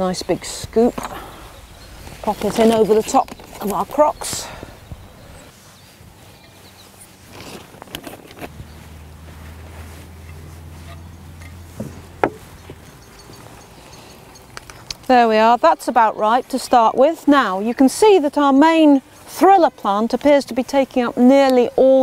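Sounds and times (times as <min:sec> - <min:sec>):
compost rustling: 0:00.0 - 0:22.0.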